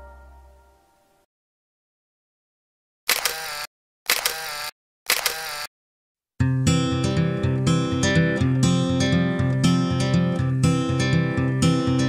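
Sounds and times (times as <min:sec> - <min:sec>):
camera shutter click and whirr: 0:03.1 - 0:05.7.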